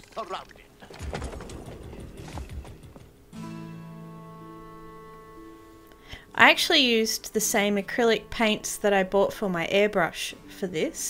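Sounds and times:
metal clatter and clanking: 0.8s - 3.2s
running hooves thumping: 0.8s - 3.3s.

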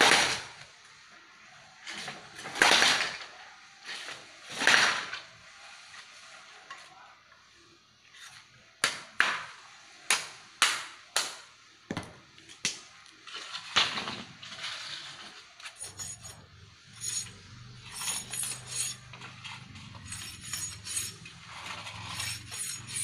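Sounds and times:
bamboo pole scraping on concrete: 8.0s - 8.6s, 13.2s - 23.0s.

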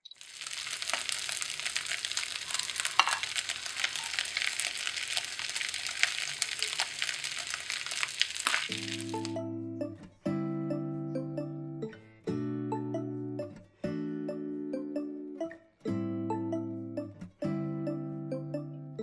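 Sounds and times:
rice sizzling in a frying pan: 0.0s - 9.4s
plucked string music: 8.7s - 19.0s.

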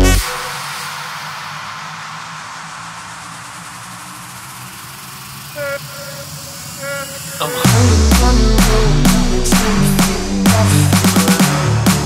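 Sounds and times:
hissing noise wash: 0.0s - 12.0s
faint low synth pad: 2.7s - 11.9s.

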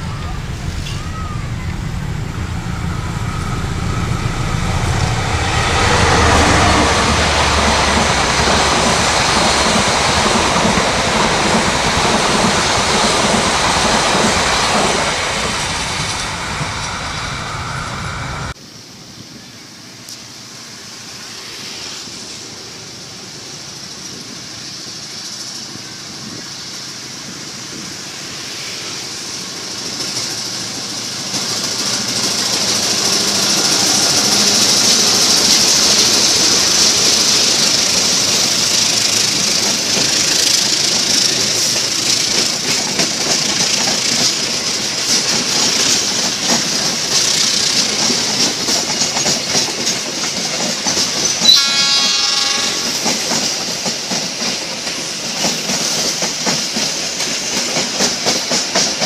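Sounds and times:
diesel locomotive passing: 0.0s - 59.0s
train wheels clattering over rail joints: 0.4s - 17.0s, 29.4s - 59.0s.

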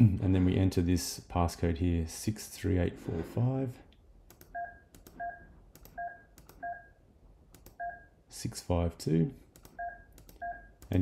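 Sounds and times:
touch-tone keypad beeps: 4.5s - 7.0s, 7.8s - 8.2s, 9.8s - 10.8s.

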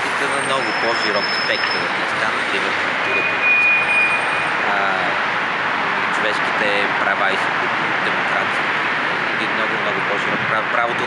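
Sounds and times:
faint voice: 0.0s - 3.5s, 4.6s - 5.2s, 5.8s - 8.7s, 9.3s - 11.0s.

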